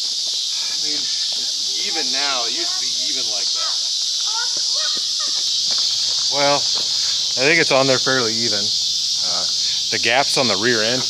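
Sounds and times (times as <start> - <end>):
insects chirping: 0.0 - 11.0
faint talk: 0.8 - 5.5.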